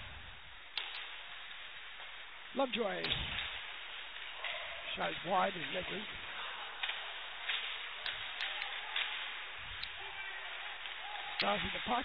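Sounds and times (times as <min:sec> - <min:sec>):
steady hiss of rink noise: 0:00.0 - 0:12.0
sharp crack: 0:00.7 - 0:02.2, 0:02.8 - 0:12.0
faint voices: 0:04.2 - 0:12.0.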